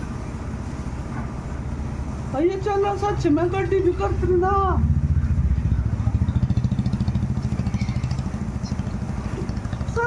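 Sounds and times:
small engine idling: 3.2s - 10.0s.

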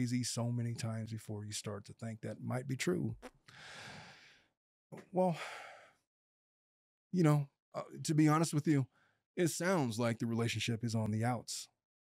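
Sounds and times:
man speaking: 0.0s - 3.3s, 7.2s - 11.7s
man breathing close to microphone: 3.5s - 4.5s, 5.3s - 6.0s.

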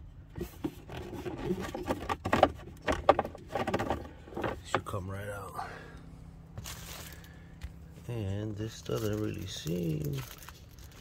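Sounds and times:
filter scraping in housing: 0.3s - 4.9s.

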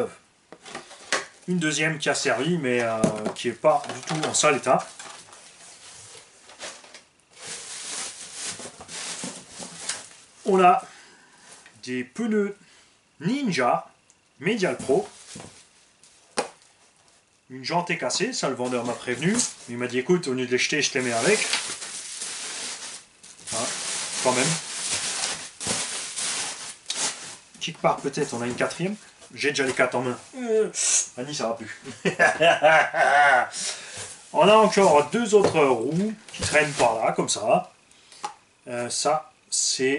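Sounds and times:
bubble wrap and plastic crinkling: 2.7s - 10.8s, 18.4s - 30.2s, 34.0s - 37.4s.

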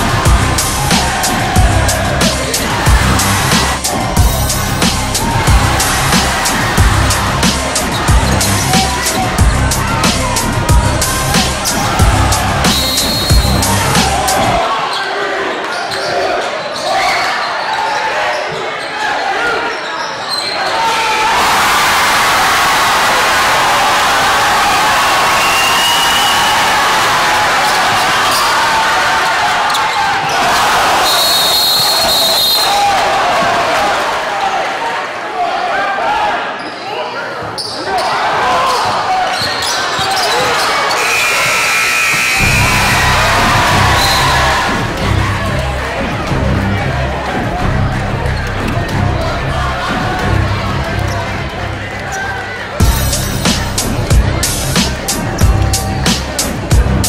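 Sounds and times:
background music: 0.0s - 14.6s, 42.4s - 57.0s
crowd of voices: 0.0s - 57.0s
sneakers squeaking: 5.3s - 9.4s, 11.3s - 20.8s, 36.6s - 42.5s.

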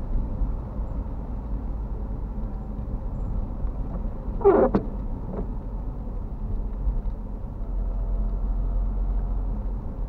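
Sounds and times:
car engine rumble: 0.0s - 10.0s
tyres on a wet road: 0.0s - 10.0s.

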